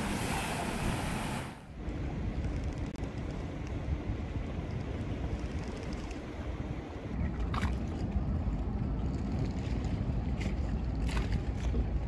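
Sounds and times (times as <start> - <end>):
waterfront ambience: 0.0 - 12.0.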